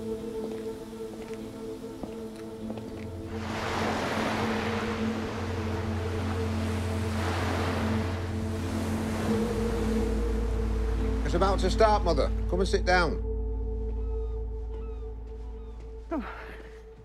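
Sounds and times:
music with held notes: 0.0 - 17.0
sea waves washing onto shore: 2.9 - 11.8.

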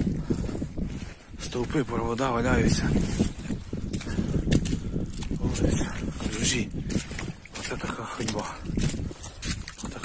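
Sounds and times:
boots squelching through mud: 0.0 - 10.0.

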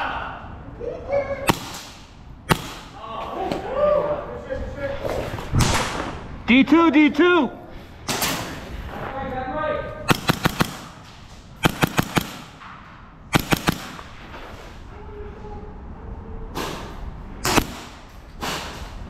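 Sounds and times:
airsoft pistol shots: 1.5 - 3.0, 10.1 - 11.0, 11.6 - 12.7, 13.3 - 14.2, 17.4 - 18.8.

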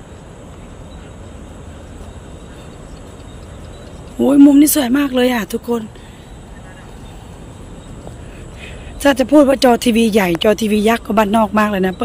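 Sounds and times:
distant city traffic hum: 0.0 - 12.0.

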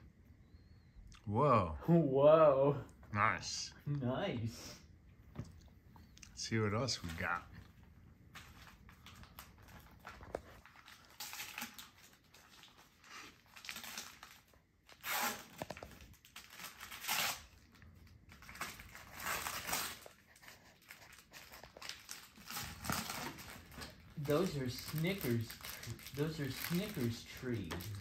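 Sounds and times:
wrapping paper tearing and crumpling: 8.4 - 28.0.

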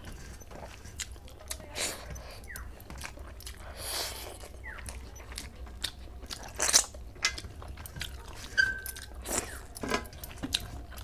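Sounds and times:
chewing: 0.0 - 11.0.

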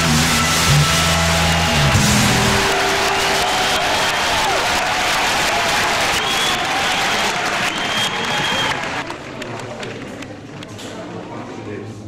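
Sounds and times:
audience applauding: 0.0 - 10.8
audience voices: 0.0 - 12.0.

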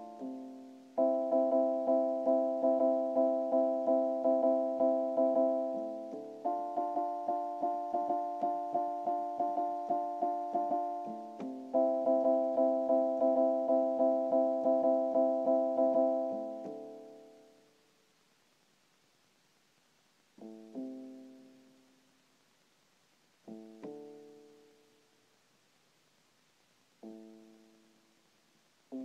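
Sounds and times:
synthesizer piano chords: 0.0 - 17.6.

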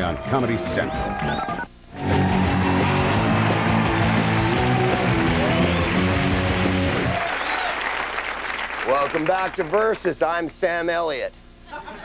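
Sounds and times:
whoops: 0.9 - 6.2, 6.9 - 7.9
music sting: 2.0 - 7.2
audience applauding: 2.0 - 10.1.

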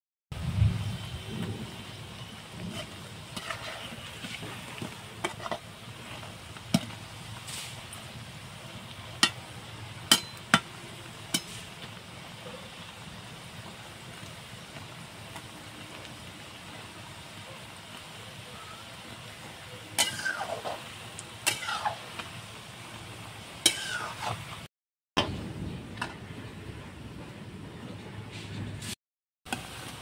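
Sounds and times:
food sizzling in hot oil: 0.4 - 24.7, 29.5 - 30.0.

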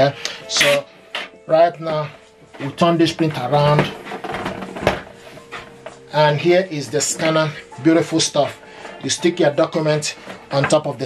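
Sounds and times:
plastic printer casing rubbing: 3.7 - 5.1.

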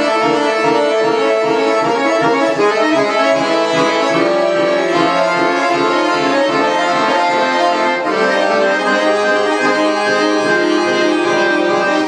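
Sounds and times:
button accordion playing: 0.0 - 12.0.

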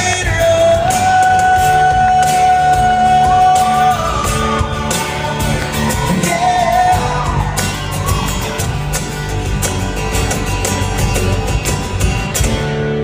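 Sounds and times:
steady percussion beat: 0.0 - 12.9
bass: 0.0 - 13.0
strummed acoustic guitars: 0.0 - 13.0.

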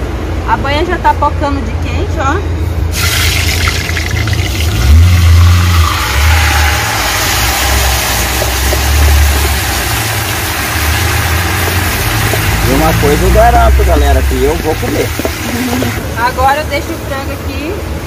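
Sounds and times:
chicken sizzling in hot lard: 2.9 - 16.0.

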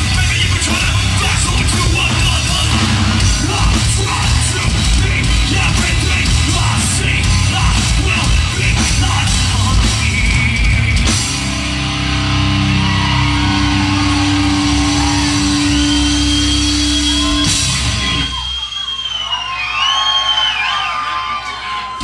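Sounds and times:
heavy metal band playing live: 0.0 - 18.6
crowd cheering and whooping: 0.0 - 22.0.

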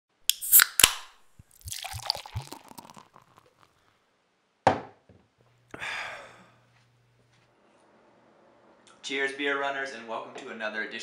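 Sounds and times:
beer can opening clicks: 0.3 - 2.9
beer fizzing: 0.3 - 3.9
beer glugging into glass: 1.4 - 3.8.

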